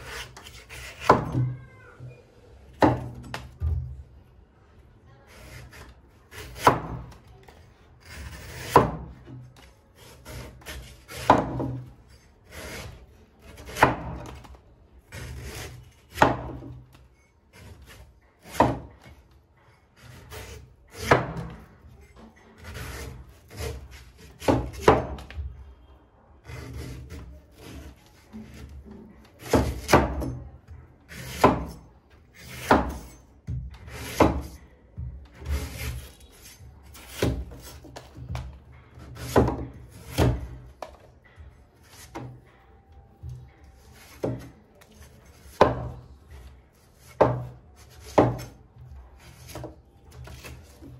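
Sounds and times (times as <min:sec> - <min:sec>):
cleaver chopping on wooden board: 0:06.3 - 0:07.2, 0:08.0 - 0:09.2, 0:10.0 - 0:11.8, 0:13.5 - 0:14.4, 0:15.1 - 0:16.8, 0:18.4 - 0:18.9, 0:22.6 - 0:25.2, 0:31.1 - 0:31.8, 0:32.4 - 0:34.6, 0:36.9 - 0:40.9, 0:44.0 - 0:44.5, 0:45.4 - 0:45.9, 0:47.0 - 0:48.6.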